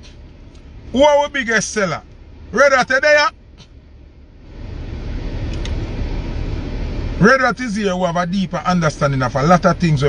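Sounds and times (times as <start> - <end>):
vehicle rumble inside car: 0.0 - 10.0.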